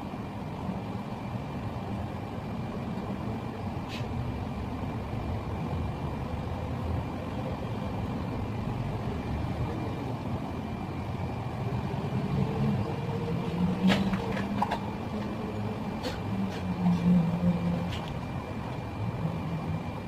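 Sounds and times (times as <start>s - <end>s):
faint high whine: 0.0s - 20.0s
steady low rumble: 0.0s - 20.0s.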